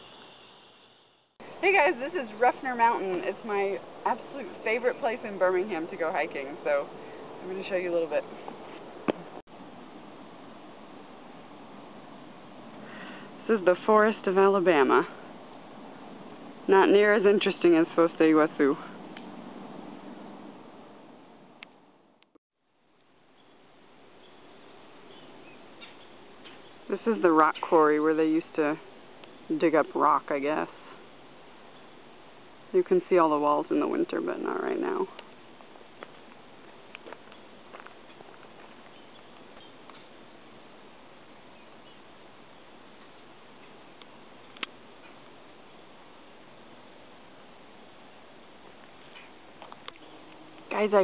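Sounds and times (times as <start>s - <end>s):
faint hiss: 0.0s - 6.0s
woodland ambience: 0.0s - 51.0s.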